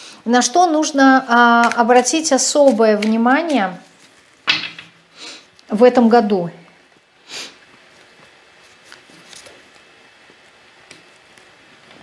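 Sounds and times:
cards handling: 0:01.6 - 0:04.4, 0:08.0 - 0:09.9
nose sniff: 0:07.2 - 0:07.6.

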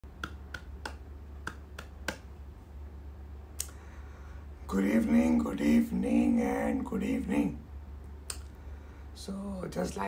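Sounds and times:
steady low hum: 0:00.0 - 0:10.0
finger snaps: 0:00.1 - 0:02.3, 0:03.5 - 0:03.8, 0:08.2 - 0:08.6.

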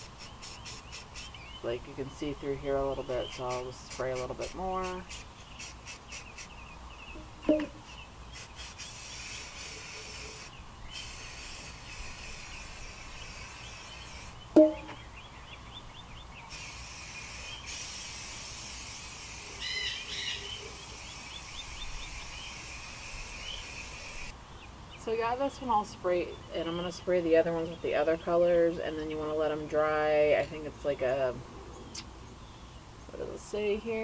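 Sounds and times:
aerosol spray paint hissing: 0:00.0 - 0:01.5, 0:03.0 - 0:06.7, 0:07.8 - 0:14.4, 0:16.5 - 0:24.3
birds chirping: 0:00.0 - 0:18.2, 0:19.4 - 0:34.0.

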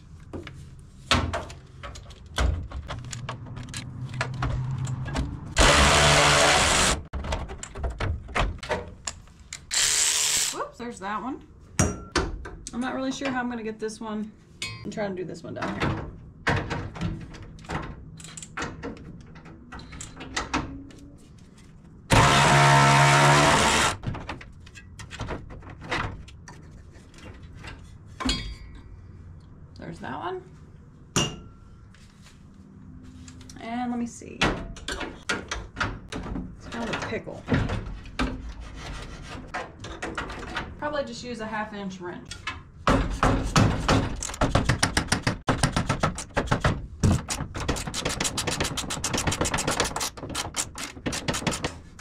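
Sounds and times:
cordless power tool running: 0:05.6 - 0:07.0, 0:22.1 - 0:24.0.

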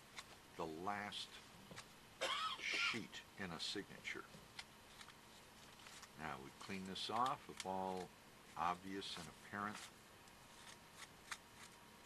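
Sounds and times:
paper rustling: 0:04.5 - 0:08.1, 0:08.8 - 0:11.8
tool scraping paper: 0:09.1 - 0:11.8.

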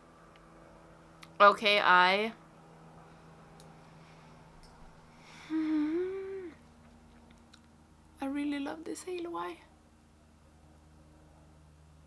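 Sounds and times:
woman humming: 0:05.4 - 0:06.7.

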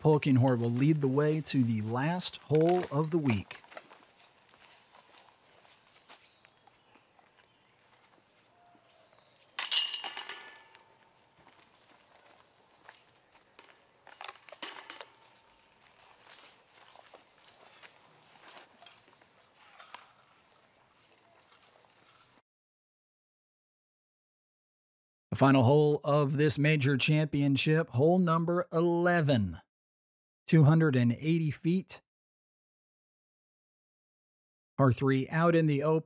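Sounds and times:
discs jangling basket chains: 0:09.6 - 0:11.8, 0:14.1 - 0:15.4.

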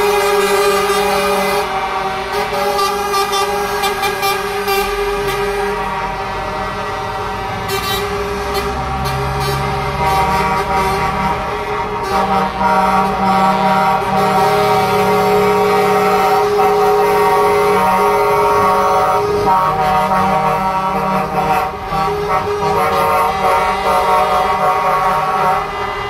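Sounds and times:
diesel truck engines driving by: 0:00.0 - 0:26.0
truck air horn blasts: 0:00.0 - 0:26.0.

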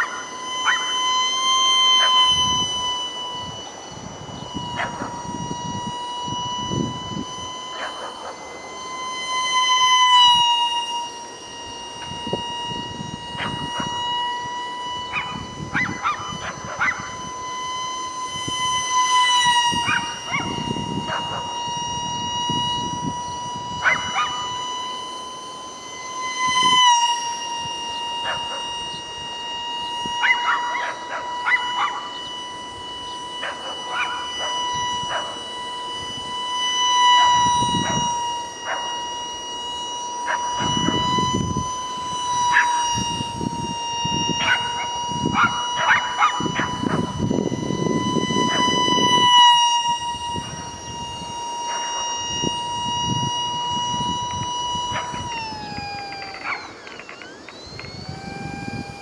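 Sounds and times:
electric ducted fan whining: 0:00.0 - 0:59.0.

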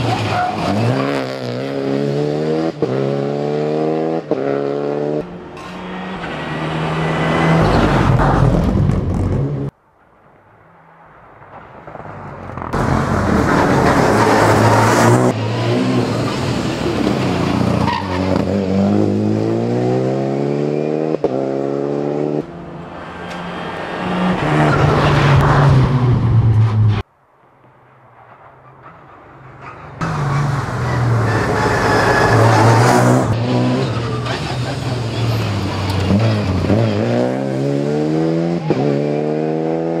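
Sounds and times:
rally car engines revving: 0:00.0 - 0:09.7, 0:12.6 - 0:27.0, 0:29.6 - 0:40.0.

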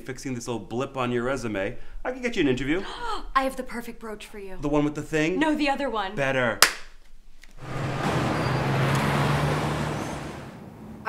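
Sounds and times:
car passing by: 0:07.6 - 0:11.0.

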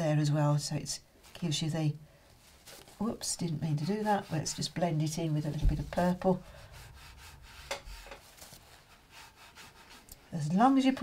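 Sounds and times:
paintbrush rubbing on paper: 0:02.5 - 0:11.0.

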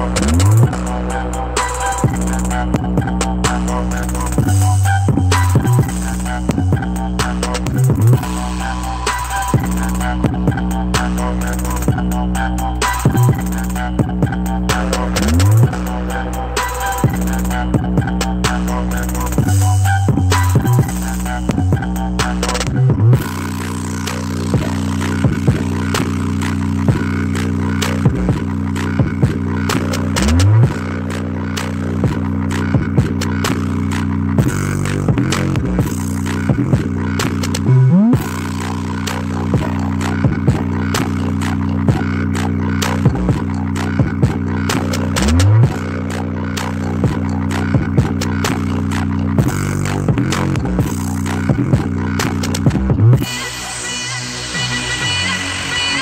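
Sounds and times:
bass-heavy electronic music: 0:00.0 - 0:56.0.

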